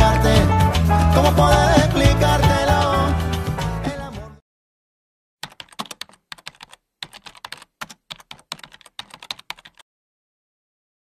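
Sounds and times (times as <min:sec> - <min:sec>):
keyboard typing: 0:05.4 - 0:09.8.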